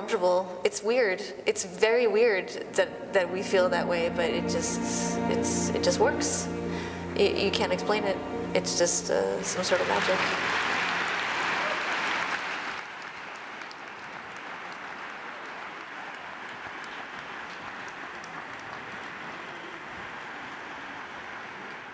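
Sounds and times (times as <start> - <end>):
audience applauding: 9.4 - 21.9.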